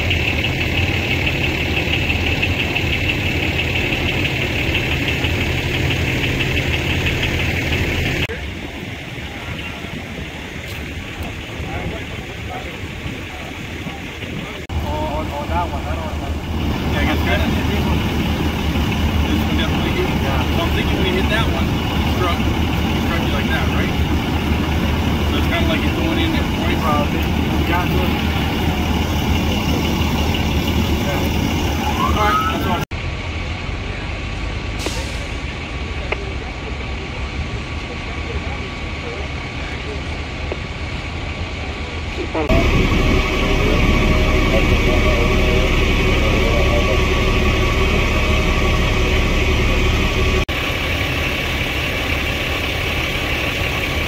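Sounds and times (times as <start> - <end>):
diesel engines idling: 0.0 - 54.0
faint voices: 8.2 - 24.0, 24.7 - 32.9, 34.9 - 50.5.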